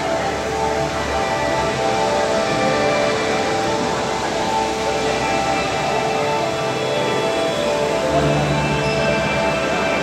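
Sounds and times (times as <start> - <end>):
ambient music soft sustained tones: 0.0 - 10.0
room hiss: 0.0 - 10.0.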